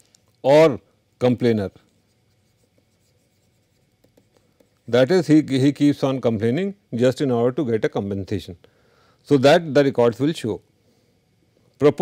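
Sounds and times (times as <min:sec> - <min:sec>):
stylus scratching on tablet: 0:01.4 - 0:05.4.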